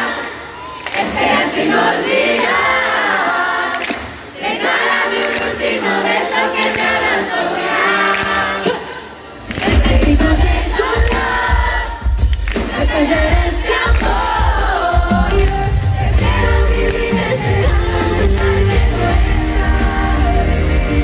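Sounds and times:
crowd singing along: 0:00.0 - 0:21.0
pop song over loudspeakers: 0:00.0 - 0:21.0.

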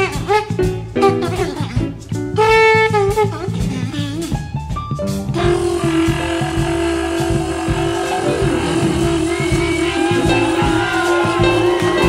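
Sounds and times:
drums and bass: 0:00.0 - 0:12.0
conch shell horn note: 0:05.4 - 0:12.0.

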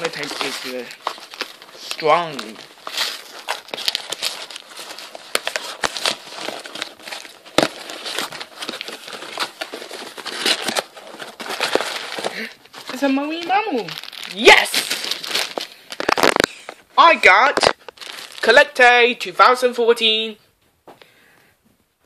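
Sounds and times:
plastic packaging crinkling: 0:00.0 - 0:19.0.

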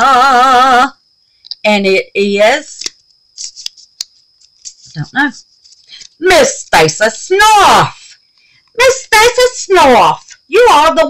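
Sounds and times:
paper crinkling and rustling: 0:03.4 - 0:06.2.

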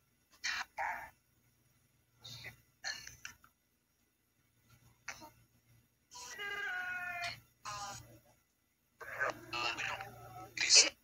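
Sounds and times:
meow-like wail: 0:06.2 - 0:07.3.

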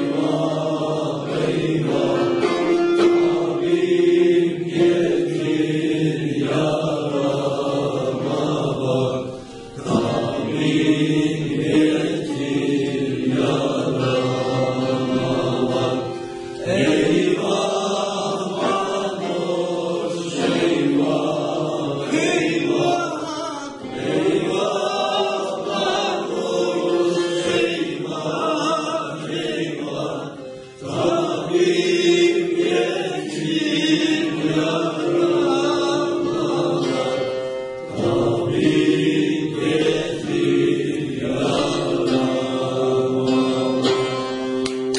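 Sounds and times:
choir singing folk song: 0:00.0 - 0:44.9
long-necked lute accompaniment: 0:00.0 - 0:44.9.

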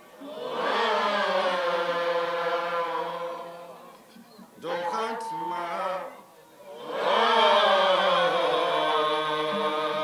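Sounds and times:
man singing into microphone: 0:04.6 - 0:06.2.

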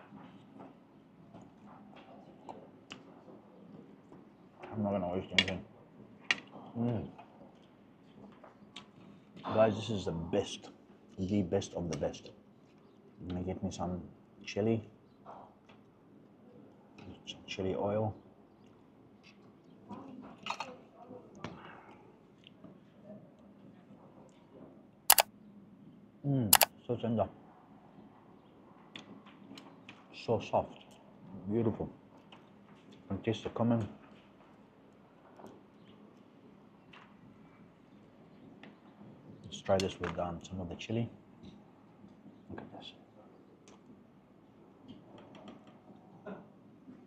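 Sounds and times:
faint restaurant room tone: 0:20.0 - 0:24.5.

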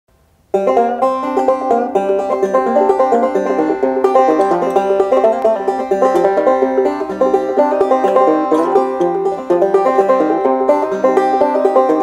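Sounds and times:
banjo picking: 0:00.4 - 0:12.0.

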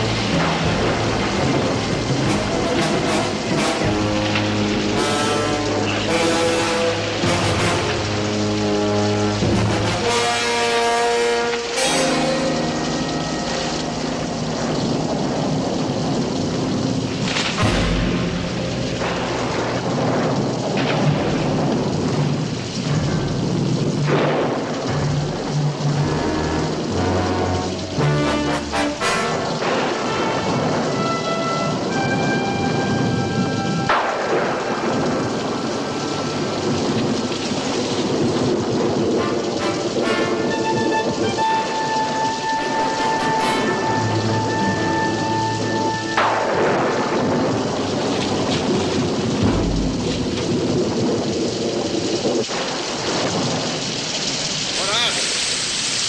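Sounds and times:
orchestral music with held notes: 0:00.0 - 0:15.2, 0:25.0 - 0:37.0, 0:39.0 - 0:50.1
steady rain: 0:00.0 - 0:56.0.

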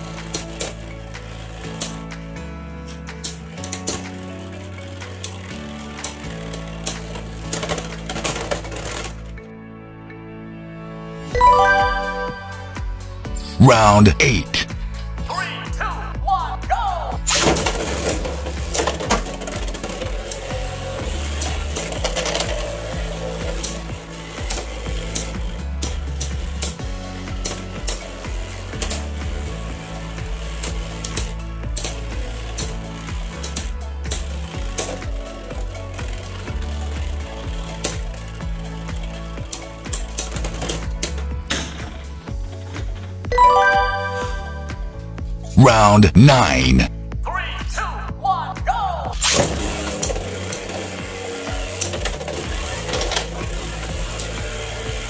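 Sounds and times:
background music with steady beat: 0:11.3 - 0:17.1, 0:43.3 - 0:49.1.

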